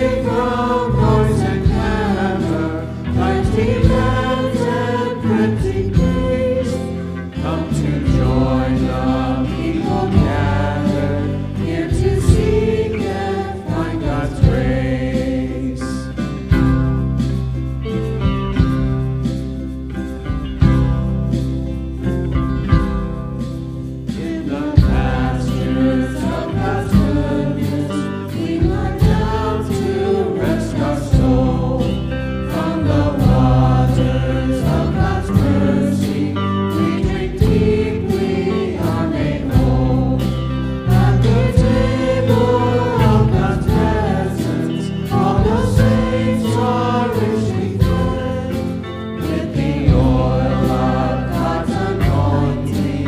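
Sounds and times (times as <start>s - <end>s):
instrumental accompaniment: 0.0s - 53.0s
voices singing a hymn: 0.0s - 53.0s.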